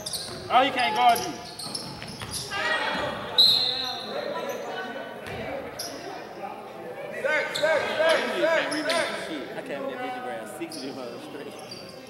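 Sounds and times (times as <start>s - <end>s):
shoe squeak on court: 0.0s - 2.6s, 3.2s - 4.6s, 7.4s - 9.2s, 10.7s - 12.0s
basketball bouncing: 0.1s - 0.5s, 5.2s - 5.5s.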